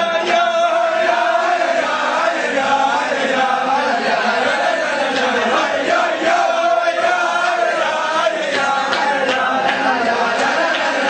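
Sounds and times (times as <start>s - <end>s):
male voices chanting: 0.0s - 11.0s.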